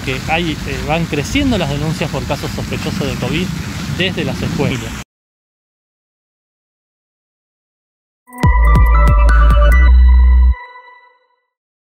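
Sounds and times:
electronic jingle: 8.3s - 11.4s.

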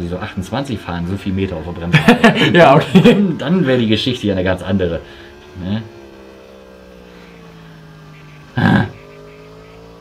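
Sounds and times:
faint motorcycle engine: 0.0s - 10.0s.

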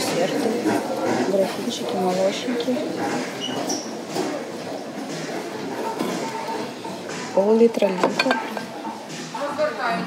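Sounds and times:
shop floor background hiss and hum: 0.0s - 10.0s.

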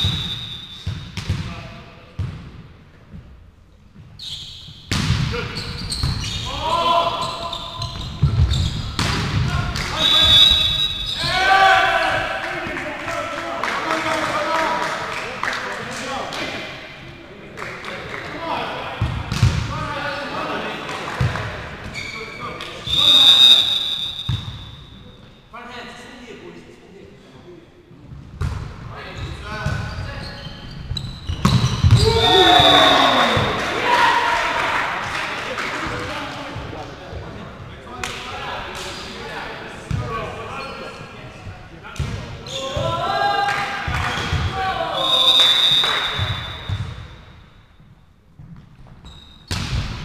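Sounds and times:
referee's whistle blast: 0.0s - 1.1s, 9.9s - 11.4s, 22.8s - 25.0s, 31.5s - 33.6s, 44.2s - 46.9s
players shouting: 6.4s - 7.8s, 9.4s - 14.8s, 31.9s - 35.3s.

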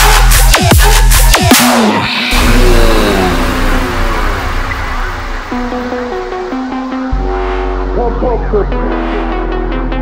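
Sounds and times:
sustained low bass: 0.1s - 10.0s
synth tones sliding downward: 1.7s - 8.3s.

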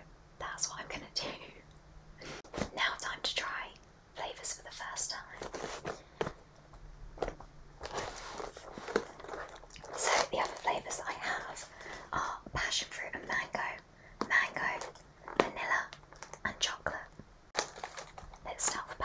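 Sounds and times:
woman whispering: 0.4s - 1.6s, 2.7s - 5.5s, 10.0s - 17.2s, 18.4s - 19.0s.

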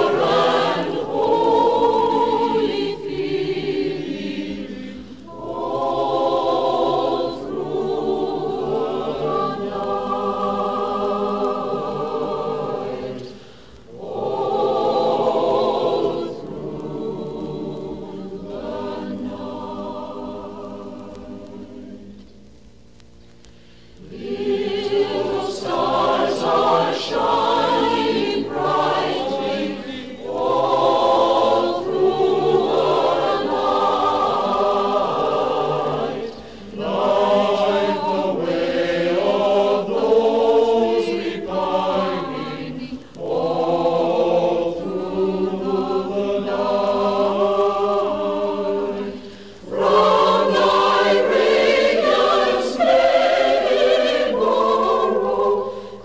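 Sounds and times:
choir singing: 0.0s - 22.3s, 24.0s - 56.0s.

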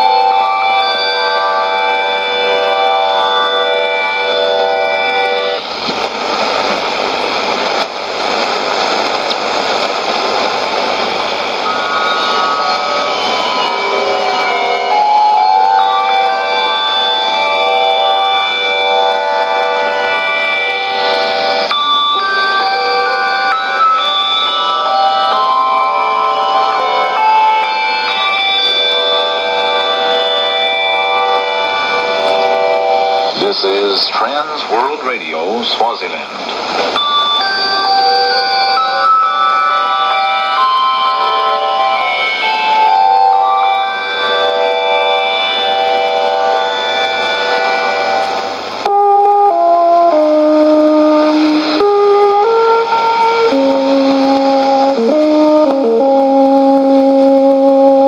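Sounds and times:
music on shortwave radio: 0.0s - 58.0s
radio static: 33.3s - 37.0s.

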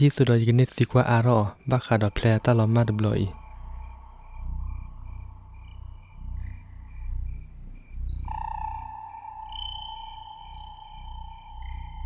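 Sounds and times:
ambient music with held high tones: 1.0s - 12.0s
low pulsing drone: 1.6s - 12.0s.

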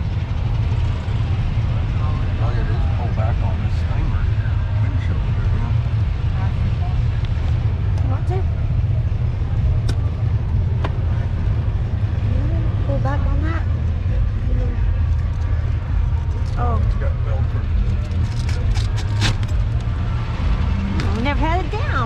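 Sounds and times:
faint voices: 0.0s - 22.0s
golf cart rumbling: 0.0s - 22.0s.

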